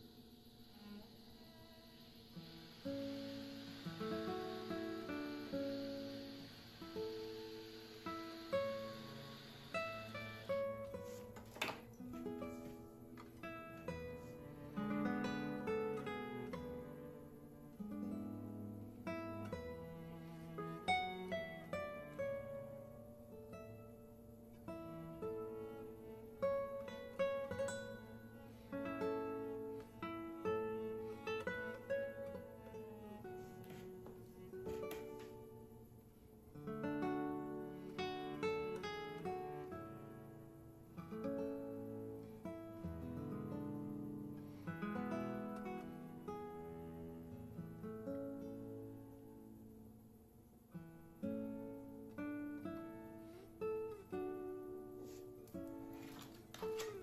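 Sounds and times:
plucked guitar melody: 0:03.8 - 0:35.8, 0:36.5 - 0:49.5.

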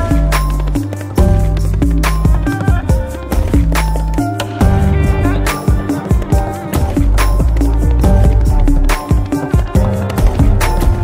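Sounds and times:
electronic remix music: 0:00.0 - 0:11.0.

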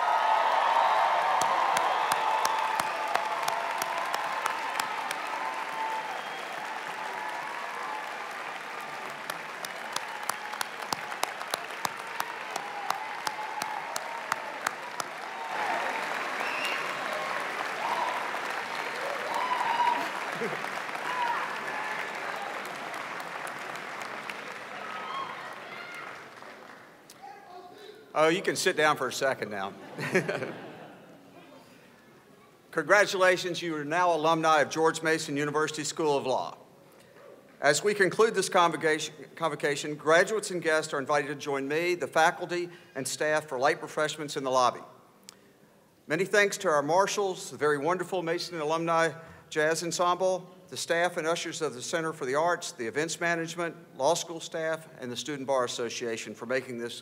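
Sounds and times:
crowd cheering and whooping: 0:00.0 - 0:26.4
audience applauding: 0:00.0 - 0:27.0.

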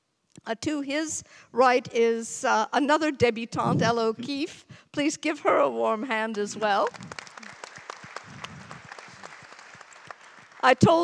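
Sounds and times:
audience applause: 0:06.6 - 0:10.8.

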